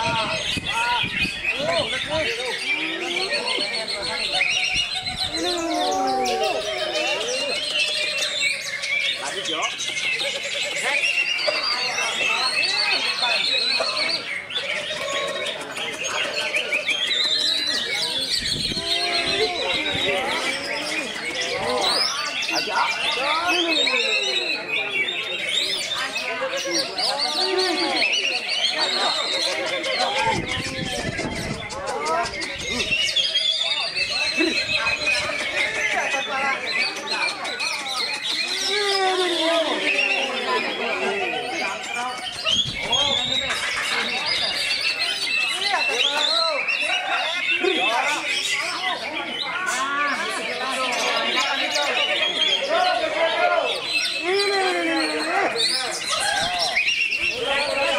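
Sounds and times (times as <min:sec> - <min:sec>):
chorus of caged birds: 0:00.0 - 0:57.9
people talking: 0:00.0 - 0:57.9
songbirds chirping and trilling: 0:00.0 - 0:57.9
voices shouting: 0:00.0 - 0:57.9.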